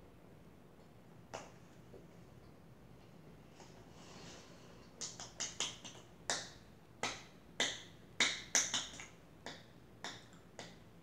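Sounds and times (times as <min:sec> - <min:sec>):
hand claps: 0:04.9 - 0:10.8.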